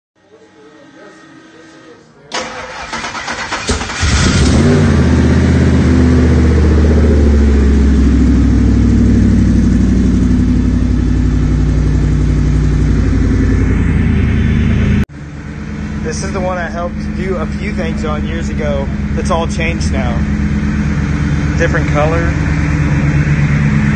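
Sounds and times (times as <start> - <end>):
engine starter cranking: 2.3 - 4.6
engine revving and running: 2.4 - 23.9.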